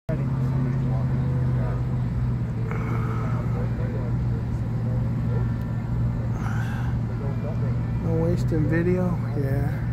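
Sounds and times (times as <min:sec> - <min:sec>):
low engine drone: 0:00.1 - 0:09.9
people talking: 0:00.1 - 0:09.9.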